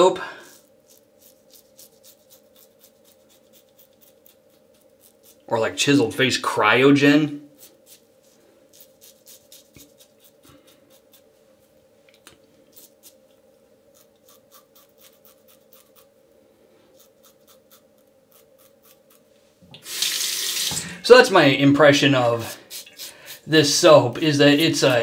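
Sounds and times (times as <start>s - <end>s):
razor scraping stubble: 0.5s - 5.6s, 7.4s - 11.4s, 12.7s - 16.2s, 16.9s - 19.3s, 22.2s - 25.0s
water running into sink: 19.7s - 21.0s.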